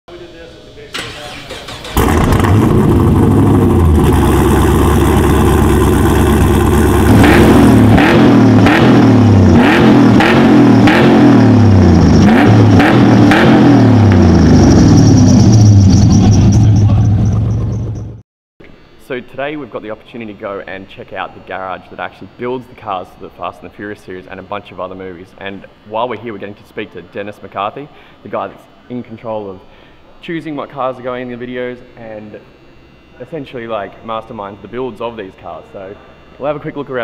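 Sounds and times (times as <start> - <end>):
engine starting and revving: 1.0 - 18.0.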